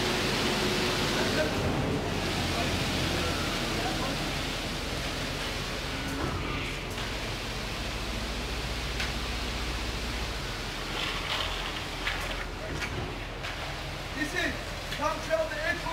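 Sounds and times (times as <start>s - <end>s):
concrete pump machinery humming: 0.0s - 15.9s.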